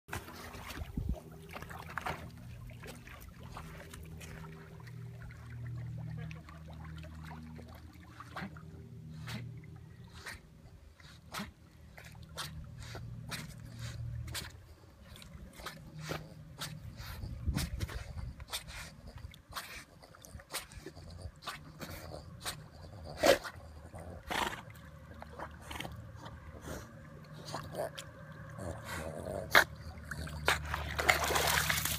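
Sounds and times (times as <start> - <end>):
dogs paddling and splashing: 0.1 - 31.9.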